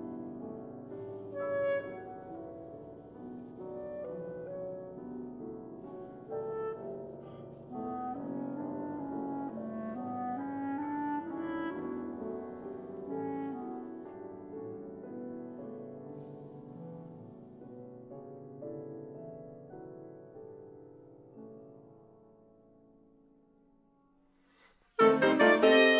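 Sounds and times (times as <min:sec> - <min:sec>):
piano chords: 0:00.0 - 0:23.2, 0:25.0 - 0:25.9
clarinet held notes: 0:25.0 - 0:25.9.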